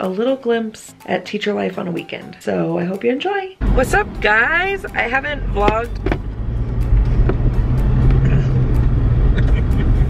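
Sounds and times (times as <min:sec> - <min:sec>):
engine and road rumble: 0:03.6 - 0:10.0.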